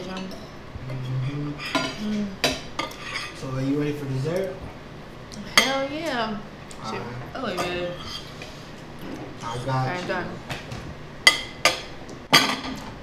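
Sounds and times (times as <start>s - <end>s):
forks clinking on plates: 11.3s - 12.9s.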